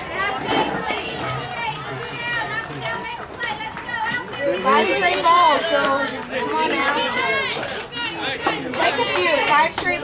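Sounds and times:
children calling and cheering: 0.0s - 10.0s.

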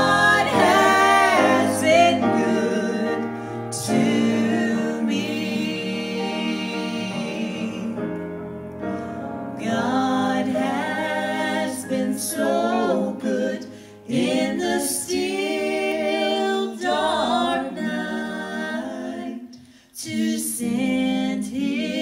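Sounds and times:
vocal trio singing in harmony: 0.0s - 22.0s.

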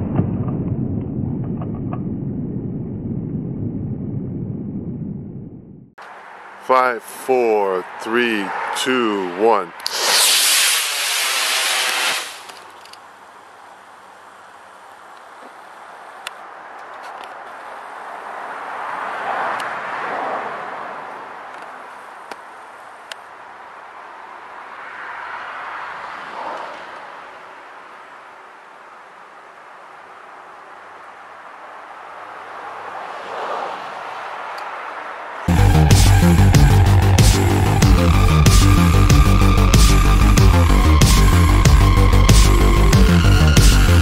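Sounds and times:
steady outdoor hiss: 6.0s - 19.8s, 20.7s - 44.0s
rocket motor hissing: 9.8s - 12.8s.

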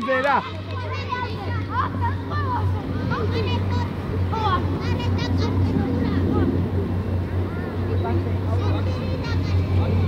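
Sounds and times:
children shouting: 0.0s - 6.6s
steady low hum: 0.5s - 10.0s.

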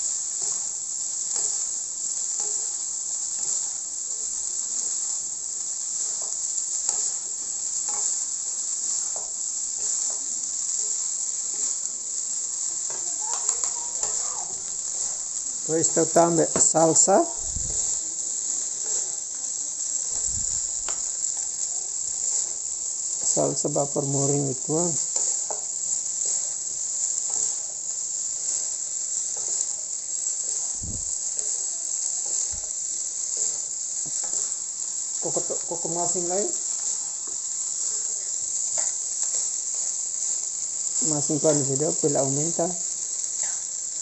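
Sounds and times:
high-pitched hiss: 0.0s - 44.0s
spatula and spoon stirring in wok: 0.0s - 44.0s.

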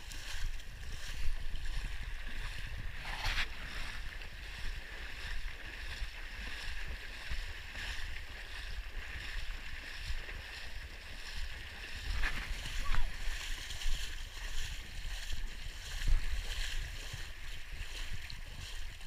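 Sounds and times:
feet splashing through water: 0.0s - 19.0s.

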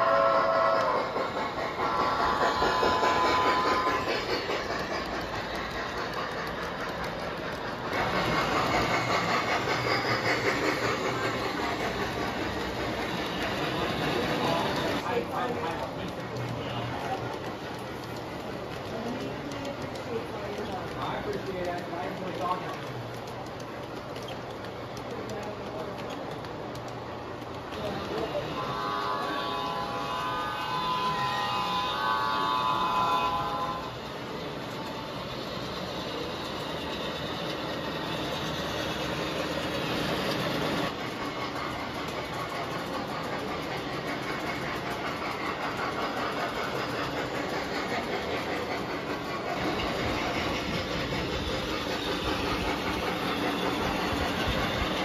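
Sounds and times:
faint whistle-like locomotive tone: 0.0s - 15.8s, 27.7s - 37.7s
indistinct chatter of people: 0.0s - 55.0s
model train wheels rumbling on rails: 0.0s - 55.0s.

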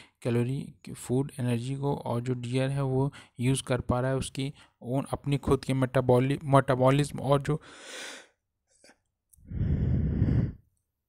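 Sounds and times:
person sighing: 9.4s - 10.6s.

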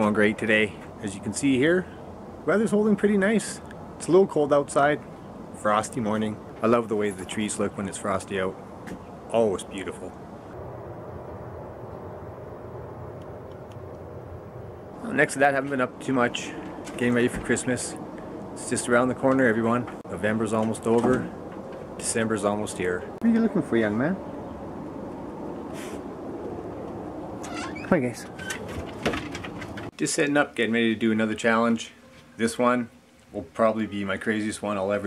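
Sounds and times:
low outdoor rumble: 0.0s - 35.0s
short breathy hiss: 25.7s - 26.0s.

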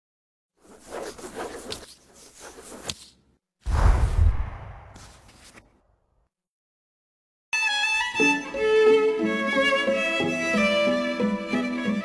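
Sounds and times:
playing cards sliding swish: 0.6s - 5.8s.

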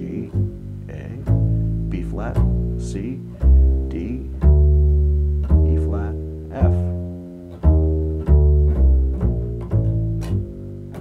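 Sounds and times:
upright bass plucked notes: 0.0s - 11.0s.

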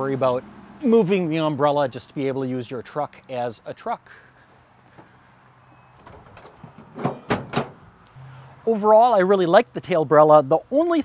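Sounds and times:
steel tailgate slamming shut: 5.8s - 7.9s.

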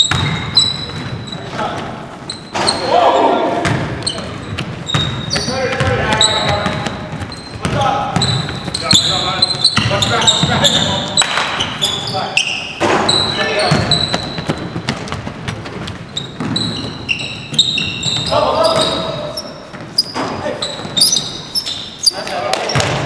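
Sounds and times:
basketball bouncing: 0.0s - 1.9s, 3.6s - 11.7s, 12.8s - 21.4s, 22.5s - 23.0s
sneaker squeaks: 0.0s - 23.0s
players calling out: 0.2s - 14.4s, 16.4s - 23.0s.

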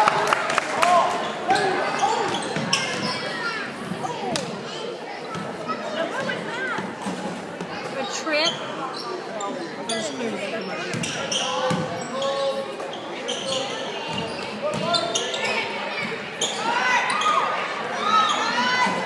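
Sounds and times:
spectators' voices: 0.0s - 19.0s
sneakers squeaking on hardwood: 1.5s - 3.3s, 8.4s - 17.4s.

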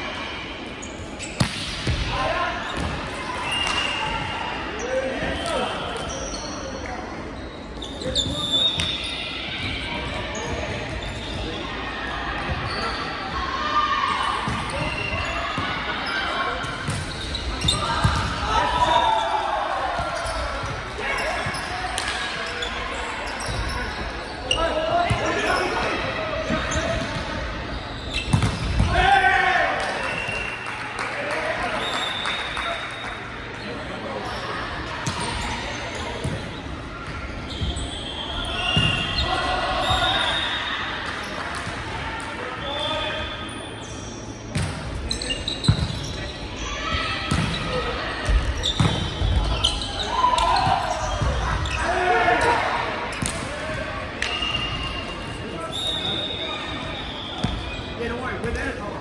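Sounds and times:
echoing volleyball strikes: 1.2s - 3.8s, 16.6s - 18.9s, 25.0s - 30.2s, 44.4s - 45.0s, 45.6s - 46.2s, 47.0s - 55.3s
players shouting calls: 28.7s - 33.2s, 37.6s - 41.1s, 46.0s - 58.4s.

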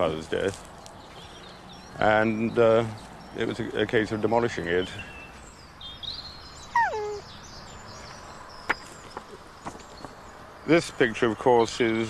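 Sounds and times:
small birds chirping: 0.0s - 12.0s
falling animal call: 6.8s - 7.2s.

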